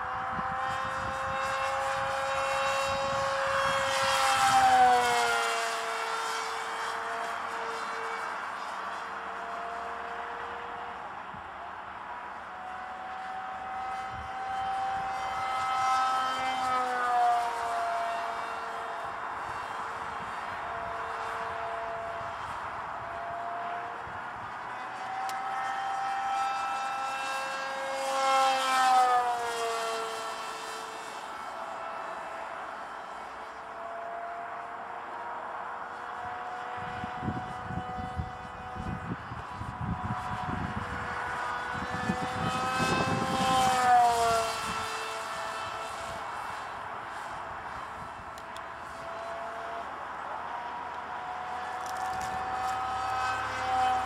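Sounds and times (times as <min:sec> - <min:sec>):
model jet electric motor whine: 0:00.0 - 0:54.0.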